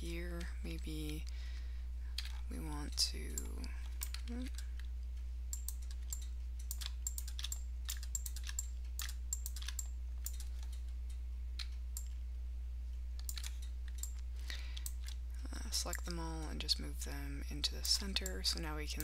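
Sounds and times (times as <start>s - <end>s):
steady low hum: 0.0s - 19.0s
keyboard and mouse clicking: 3.3s - 4.9s, 5.5s - 12.2s, 13.2s - 15.2s, 17.8s - 19.0s.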